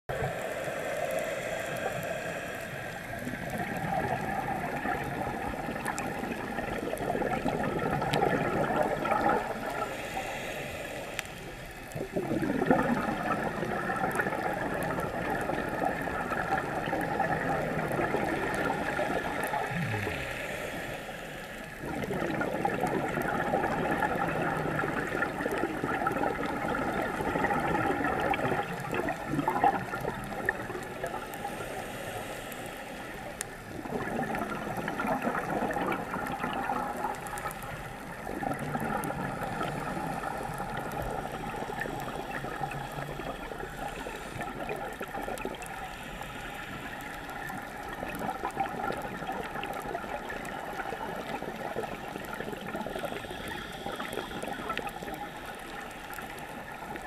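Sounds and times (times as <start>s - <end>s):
underwater bubbles gurgling: 0.1s - 57.0s.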